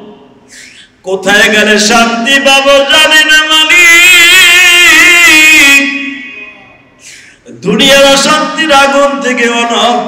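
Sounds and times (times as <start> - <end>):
man chanting through a microphone: 1.0 - 6.8, 7.5 - 10.0.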